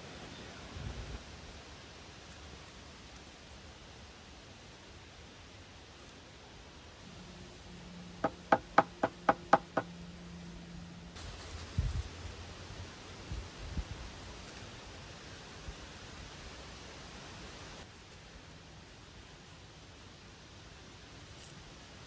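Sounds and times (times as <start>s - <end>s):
ringing knocks on wooden joist: 8.2s - 9.9s.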